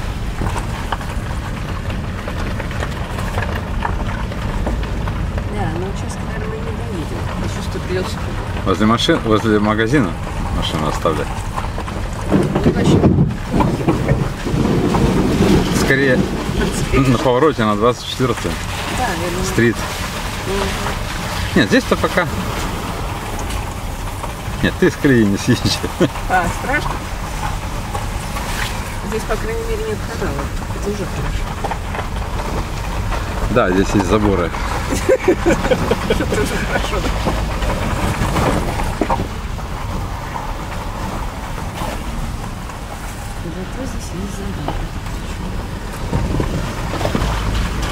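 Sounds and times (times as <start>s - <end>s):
car engine running: 0.0s - 47.9s
tyres splashing through slush: 0.0s - 47.9s.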